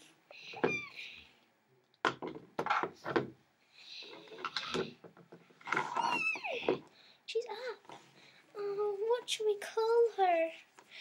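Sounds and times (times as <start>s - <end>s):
plastic toys knocking on wooden floor: 2.0s - 3.4s.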